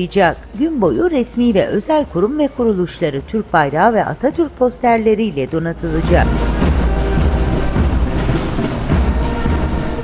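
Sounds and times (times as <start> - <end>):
bass drum: 5.8 - 10.0
military marching band: 5.9 - 10.0.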